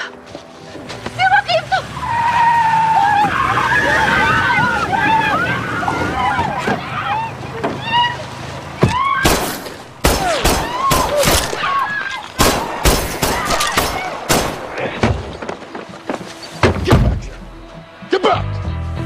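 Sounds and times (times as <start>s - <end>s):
pistol shots: 9.2s - 11.7s, 12.4s - 14.9s.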